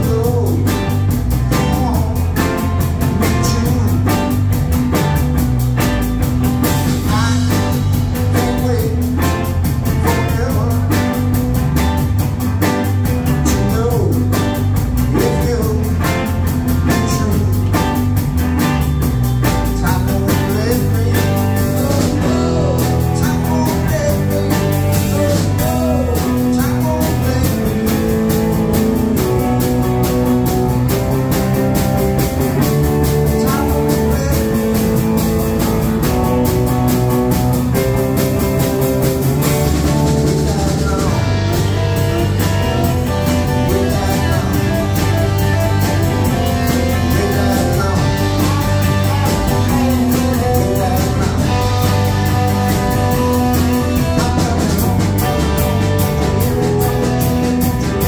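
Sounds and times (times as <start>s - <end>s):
bass guitar: 0.0s - 58.0s
drum kit: 0.0s - 58.0s
electric guitars: 0.0s - 58.0s.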